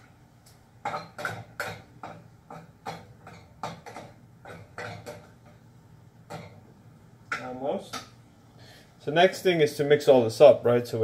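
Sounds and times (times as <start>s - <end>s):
kitchenware knocks and clinks: 0.8s - 5.6s, 6.3s - 6.6s.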